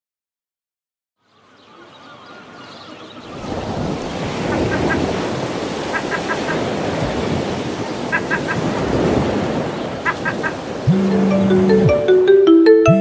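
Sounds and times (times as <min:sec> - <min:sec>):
water waves washing: 0:03.0 - 0:12.4.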